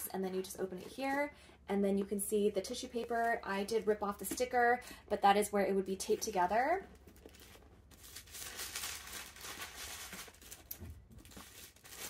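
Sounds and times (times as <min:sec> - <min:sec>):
tissue paper rustling: 0:07.1 - 0:12.0.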